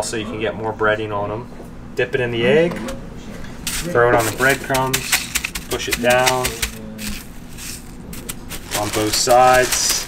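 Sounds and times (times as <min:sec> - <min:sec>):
breadcrumbs crunching and rustling: 0:03.7 - 0:10.0.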